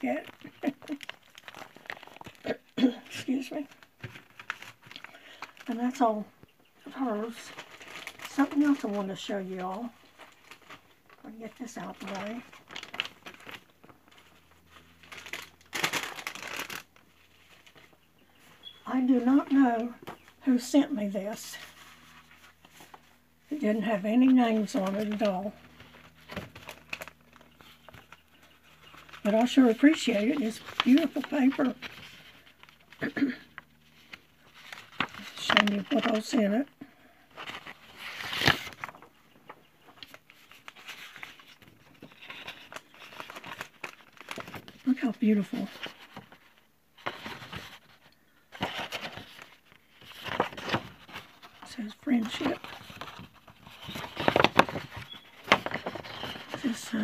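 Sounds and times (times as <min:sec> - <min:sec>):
paper rustling and crinkling: 0:00.0 - 0:06.3, 0:06.9 - 0:57.0.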